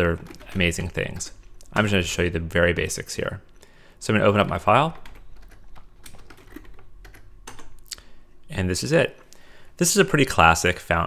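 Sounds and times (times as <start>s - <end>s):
computer keyboard typing: 0.0s - 1.9s, 4.9s - 7.9s.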